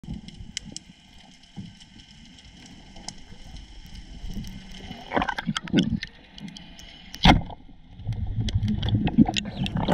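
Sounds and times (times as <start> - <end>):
sharp clicks and crackles: 0.0 - 9.9
underwater rumble of water: 0.0 - 9.9.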